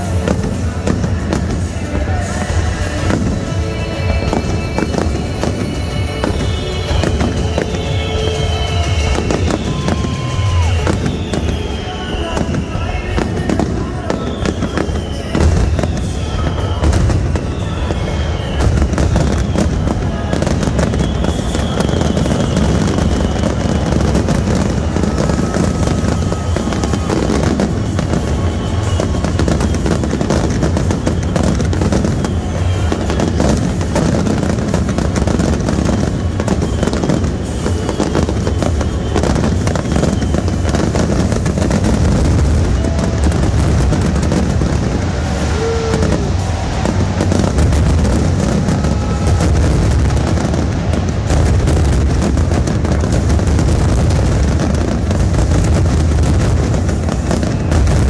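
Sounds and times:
fireworks booming and crackling: 0.0 - 58.0
music playing: 0.0 - 58.0.

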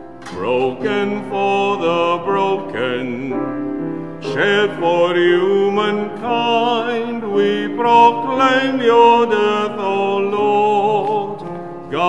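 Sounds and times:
piano accompaniment: 0.0 - 12.0
man singing a hymn: 0.2 - 12.0.

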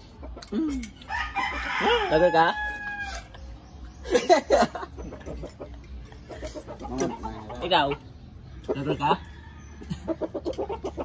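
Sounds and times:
chicken clucking: 0.0 - 2.1, 4.7 - 11.0.

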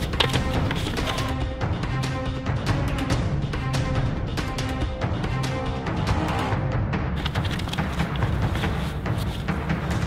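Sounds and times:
drum-led film score: 0.0 - 10.0.

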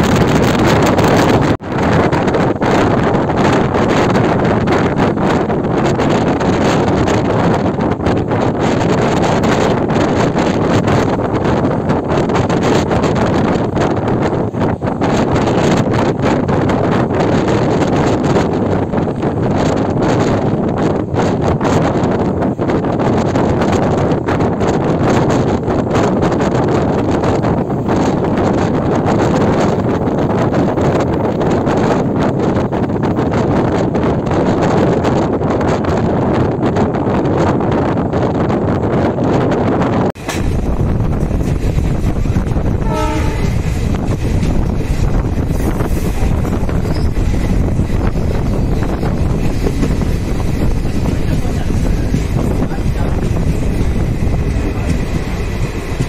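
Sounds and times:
train wheels rumbling on rails: 0.0 - 56.0
wind buffeting microphone: 0.0 - 56.0.

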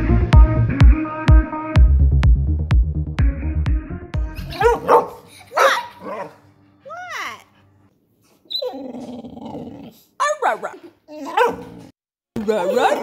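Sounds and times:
music with steady beat: 0.0 - 4.6
dog vocalising: 4.5 - 7.1.

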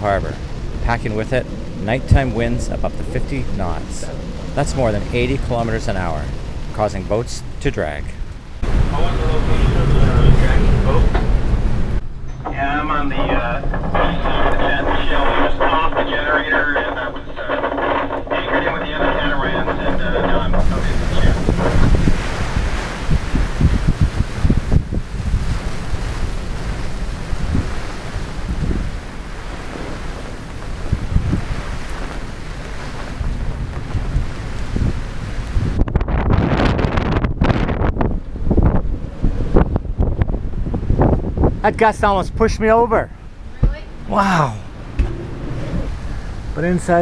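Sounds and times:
radio call voice: 0.0 - 8.2, 12.4 - 21.7, 44.1 - 44.7
gusting wind buffeting microphone: 0.0 - 47.0.

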